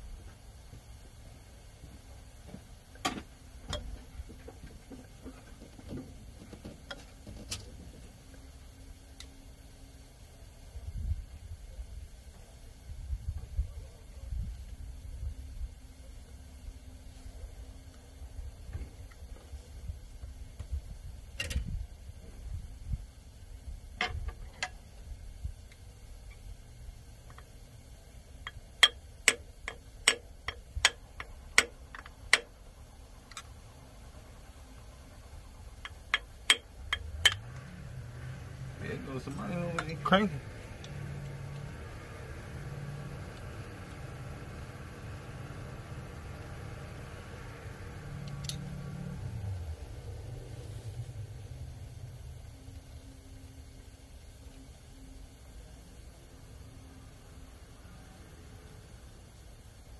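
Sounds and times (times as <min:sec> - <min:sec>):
tools clicking on metal: 0:28.4 - 0:32.6.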